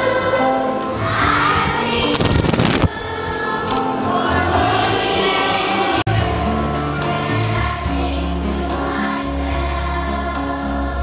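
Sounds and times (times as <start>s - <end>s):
children's choir singing: 0.0s - 11.0s
musical accompaniment with bass: 0.0s - 11.0s.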